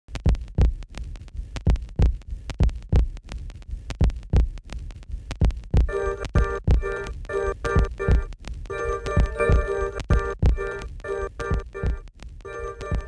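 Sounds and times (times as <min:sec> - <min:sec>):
heartbeat-like low thumps: 0:00.1 - 0:13.0.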